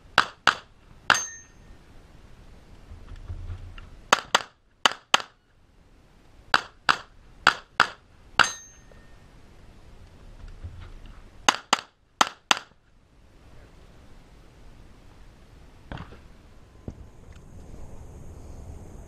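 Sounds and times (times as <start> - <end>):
brief metallic ring: 1.1 - 1.7, 8.4 - 9.2.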